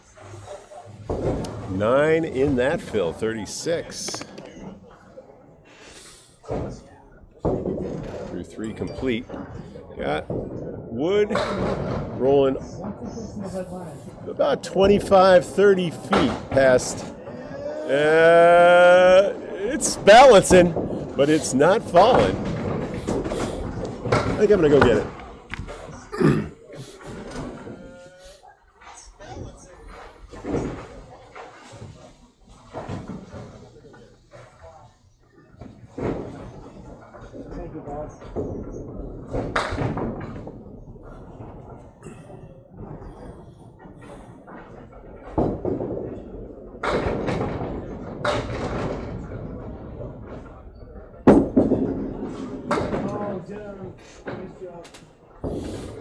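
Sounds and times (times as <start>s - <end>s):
voices in a hall: 0.0s - 56.0s
bowling balls and pins knocking: 0.1s - 4.6s, 6.4s - 26.1s, 27.0s - 28.1s, 35.6s - 54.7s.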